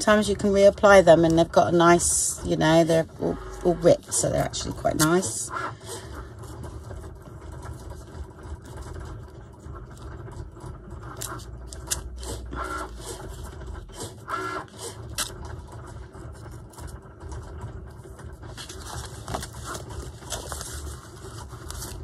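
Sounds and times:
low steady hum: 0.0s - 22.0s
paper rustling and crinkling: 18.2s - 22.0s.

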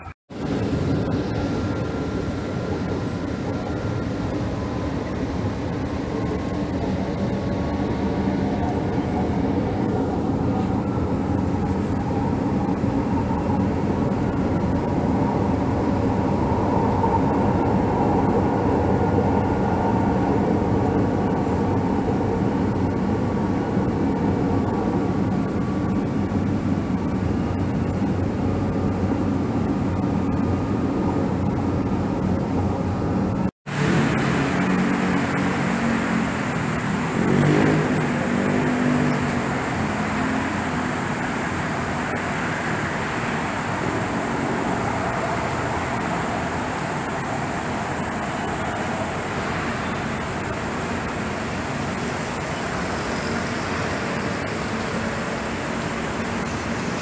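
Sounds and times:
road traffic: 0.0s - 57.0s
train car running noise: 0.0s - 57.0s.

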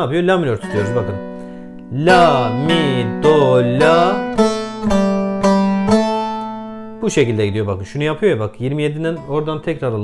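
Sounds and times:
plucked long-necked lute notes: 0.5s - 8.2s, 9.0s - 10.0s.

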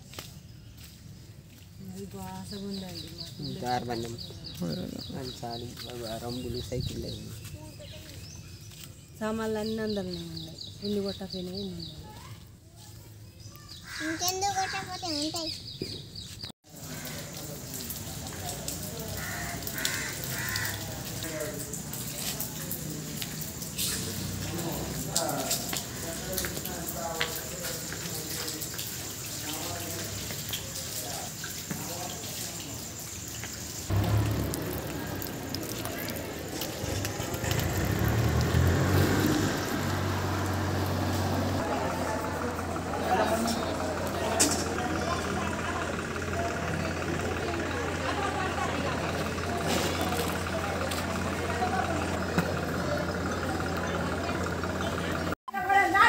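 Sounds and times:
people talking: 1.8s - 8.3s, 9.2s - 13.1s, 16.9s - 33.0s, 33.9s - 39.7s, 41.5s - 56.0s
crow cawing: 13.8s - 14.9s, 19.2s - 21.6s
low engine hum: 32.8s - 55.4s.

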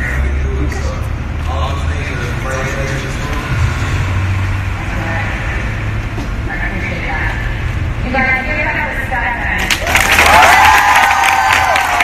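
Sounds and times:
man speaking over loudspeaker: 0.0s - 4.0s
steady low rumble: 0.0s - 9.8s.

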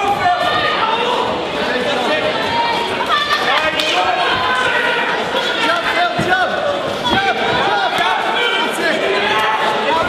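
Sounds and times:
spectators shouting: 0.0s - 10.0s.

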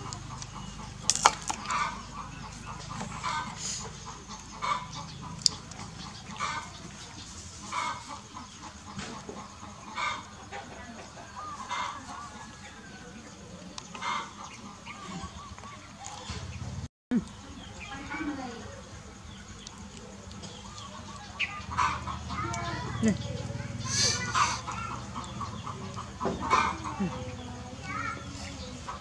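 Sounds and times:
chickens clucking: 0.0s - 29.0s.

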